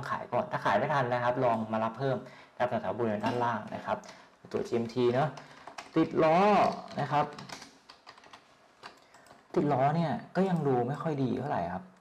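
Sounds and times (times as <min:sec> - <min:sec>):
keyboard typing: 0:03.2 - 0:09.8.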